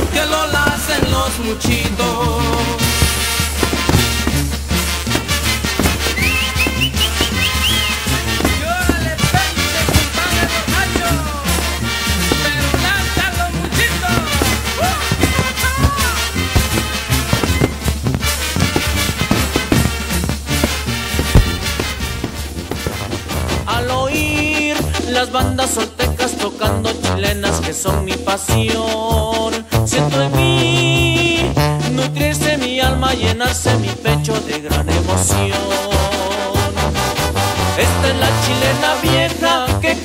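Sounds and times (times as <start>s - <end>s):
heavy low thump: 0.0s - 25.1s
steady bass line: 0.0s - 25.2s
brass band music: 0.0s - 28.5s, 29.8s - 40.0s
short rising whistles: 6.0s - 8.3s.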